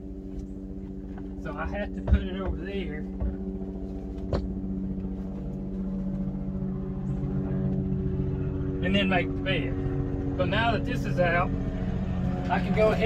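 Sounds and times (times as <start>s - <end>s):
steady mechanical hum: 0.0s - 13.0s.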